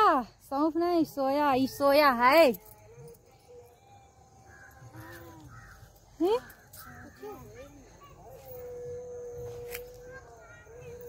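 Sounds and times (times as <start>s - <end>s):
faint voices: 1.2s - 11.0s
crows cawing: 4.3s - 7.8s.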